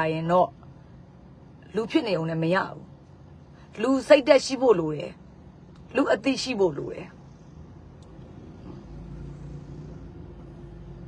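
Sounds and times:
faint steady hum: 0.0 - 11.0
low vehicle engine rumble: 0.0 - 11.0.

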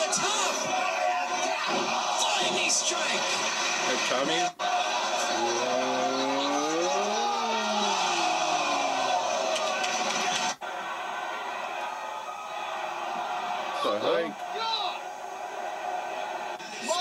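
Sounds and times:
crowd noise: 0.0 - 17.0.

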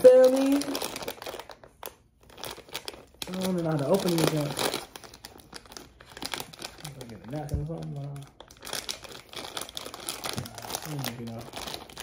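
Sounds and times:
plastic snack pouch crinkling: 0.0 - 12.0.

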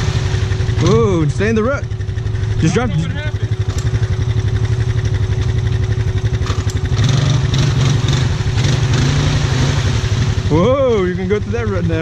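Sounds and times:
muddy water splashing: 0.0 - 1.6, 2.2 - 12.0
atv engine rumbling under load: 0.0 - 12.0.

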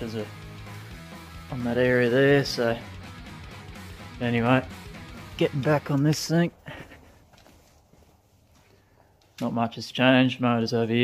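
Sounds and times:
faint footsteps on concrete: 5.3 - 9.8.

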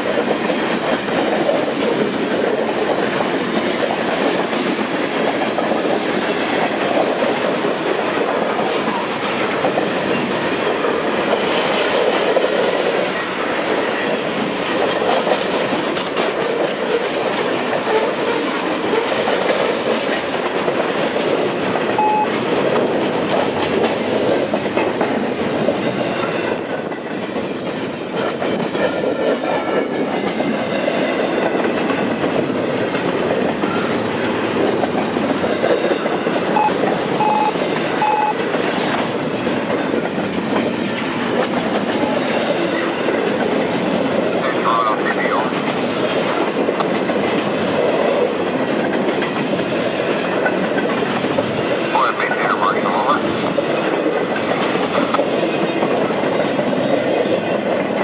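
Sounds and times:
freight train wheels rumbling: 0.0 - 58.0
wheels clicking over rail joints: 45.6 - 51.9.

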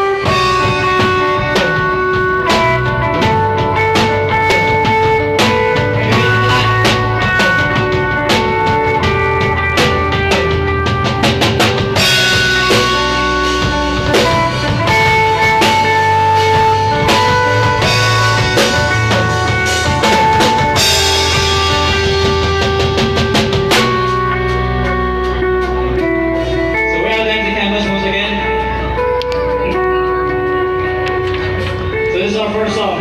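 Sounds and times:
bass guitar: 0.0 - 33.0
drum kit: 0.0 - 33.0
electric guitars: 0.0 - 33.0.

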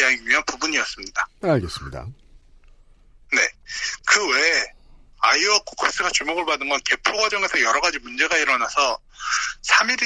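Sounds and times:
person saying a word: 1.4 - 2.1.

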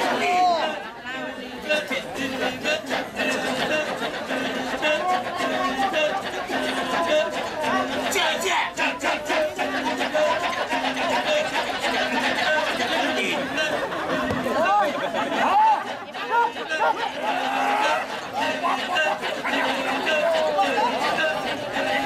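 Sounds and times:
men chanting in chorus: 0.0 - 22.0
vocal cries: 1.7 - 22.0.

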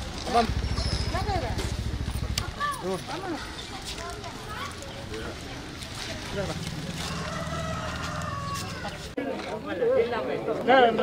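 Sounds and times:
low fast throbbing: 0.3 - 3.1.

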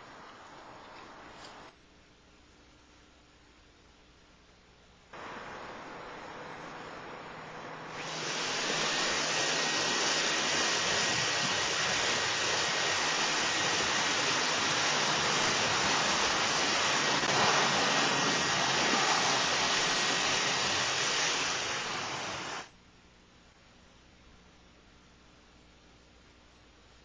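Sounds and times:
blower air hissing: 5.2 - 22.7.

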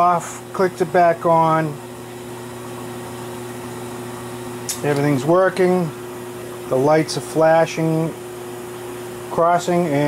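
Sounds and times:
generator humming: 0.0 - 10.0.

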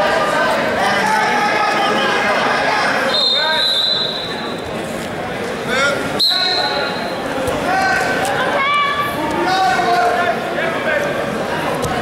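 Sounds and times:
referee's whistle blasts: 3.1 - 4.4, 6.2 - 7.1.

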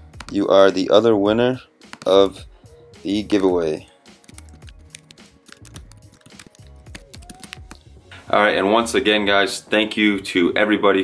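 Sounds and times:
quiet background music: 0.0 - 11.0
typing on computer keyboard: 4.2 - 7.8.

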